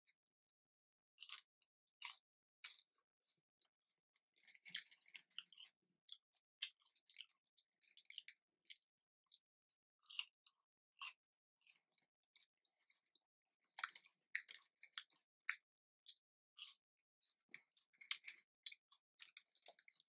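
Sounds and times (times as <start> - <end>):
chewing crunchy fries: 1.2 - 3.4, 4.1 - 20.0.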